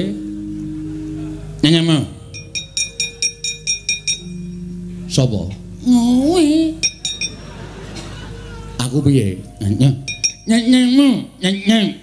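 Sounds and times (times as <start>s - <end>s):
metallic plate clinks: 6.8s - 7.4s, 10.0s - 10.7s.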